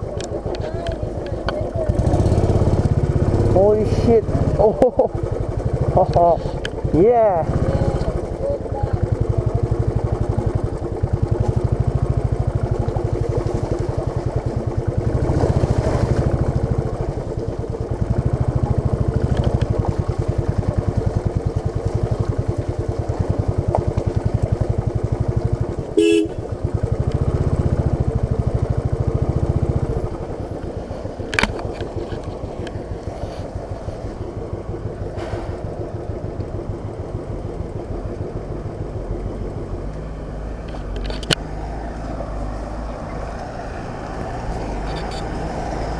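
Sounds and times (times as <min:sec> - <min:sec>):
motorcycle engine pulsing: 0:00.0 - 0:41.9
motorcycle horn toot: 0:26.0 - 0:26.6.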